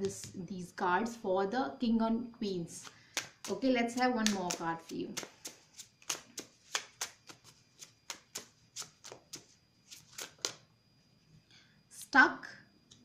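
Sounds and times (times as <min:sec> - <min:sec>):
deck of cards shuffling: 0:02.7 - 0:10.6.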